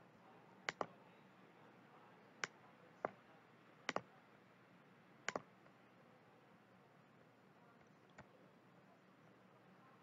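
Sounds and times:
faint steady hiss: 0.0 - 10.0
computer mouse clicks: 0.7 - 0.9, 3.9 - 4.1, 5.2 - 5.5.

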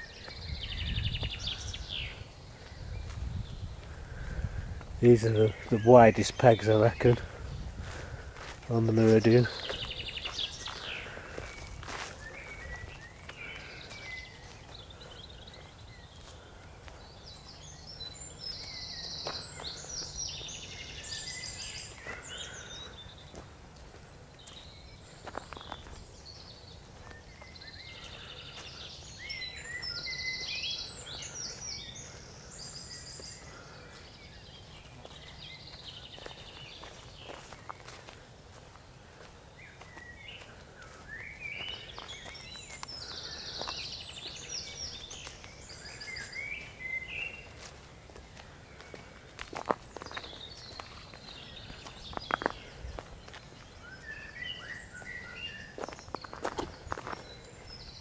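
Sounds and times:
songbird trilling and chirping: 0.0 - 23.5, 24.4 - 38.1, 39.1 - 58.0
footsteps through grass: 1.1 - 58.0.

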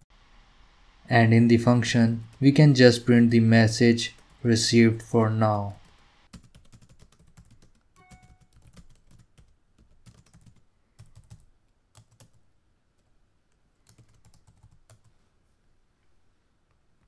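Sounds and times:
computer keyboard typing: 5.7 - 12.4, 13.8 - 15.1.

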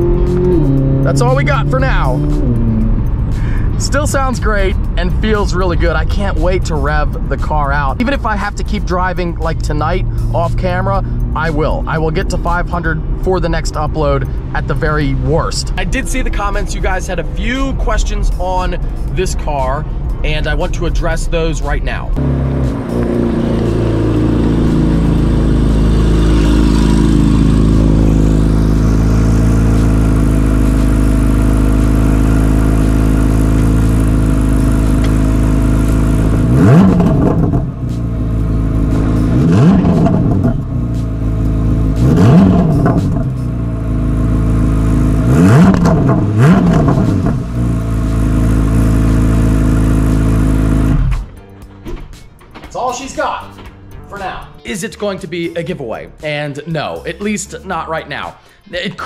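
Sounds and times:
engine revving blips: 0.0 - 3.7, 22.2 - 51.5
car engine running: 0.0 - 51.7.

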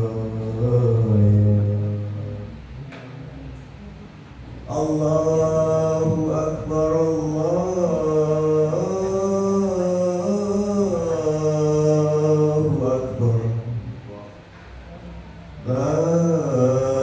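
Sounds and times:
man chanting call to prayer: 0.0 - 2.9, 4.6 - 14.5, 15.6 - 17.0.

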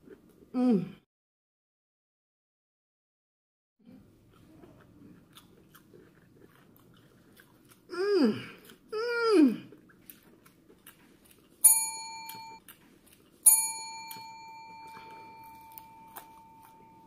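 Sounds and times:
service bell ringing: 11.6 - 12.6, 13.5 - 17.0.

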